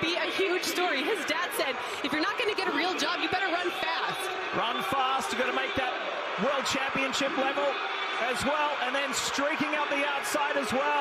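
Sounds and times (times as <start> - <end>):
man commentating a race: 4.5 - 11.0.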